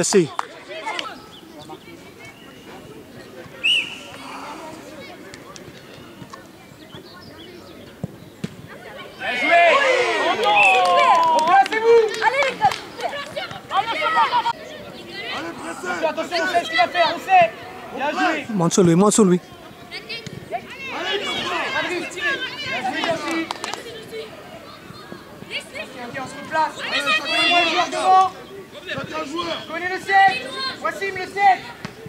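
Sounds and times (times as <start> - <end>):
faint voices: 0.0 - 32.0
people shouting and cheering: 8.7 - 18.5, 19.9 - 32.0.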